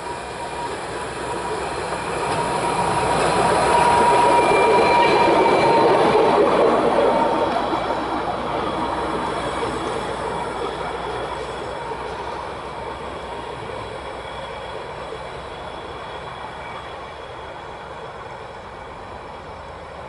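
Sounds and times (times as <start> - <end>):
train rail noise: 0.0 - 20.0.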